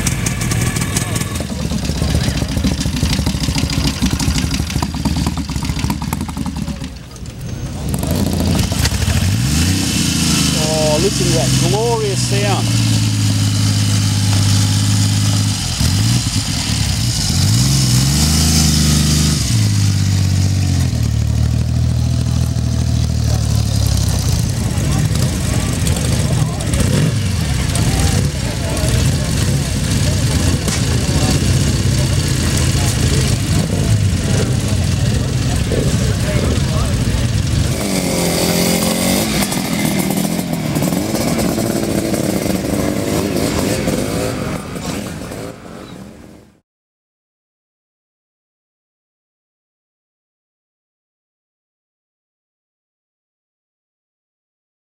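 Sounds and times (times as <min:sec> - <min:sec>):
motorcycle engine revving: 0:00.0 - 0:46.2
several motorcycle engines running: 0:00.0 - 0:46.6.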